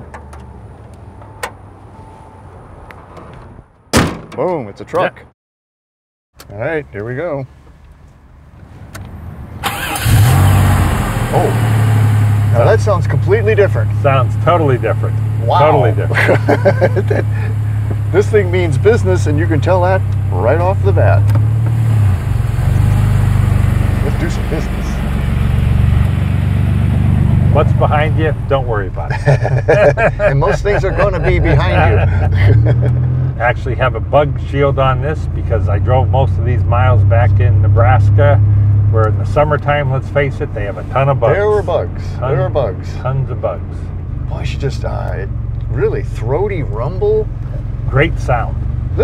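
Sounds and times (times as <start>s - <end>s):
truck engine pulling away: 9.2s - 49.0s
low steady background rumble: 9.9s - 22.6s, 26.6s - 49.0s.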